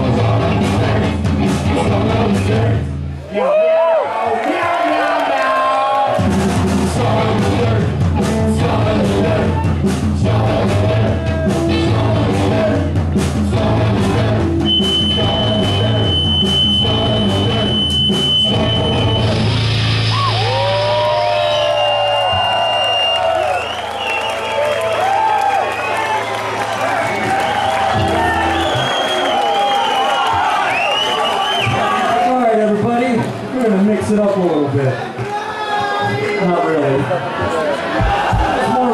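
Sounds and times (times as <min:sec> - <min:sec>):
punk band playing live: 0:00.0 - 0:03.2, 0:06.1 - 0:23.2, 0:24.7 - 0:34.5
crowd cheering and whooping: 0:03.2 - 0:06.4, 0:19.9 - 0:32.5, 0:34.9 - 0:38.9.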